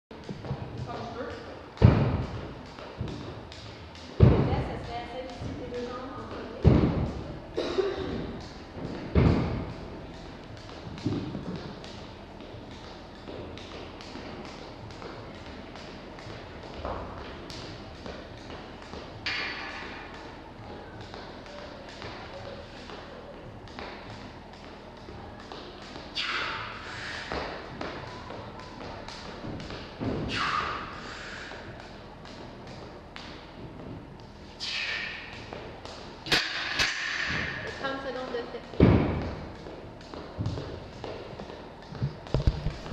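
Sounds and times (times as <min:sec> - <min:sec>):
people talking: 0:00.8 - 0:01.6, 0:04.2 - 0:08.2, 0:37.7 - 0:38.8
heavy echoing thuds: 0:01.8 - 0:12.1, 0:38.7 - 0:42.9.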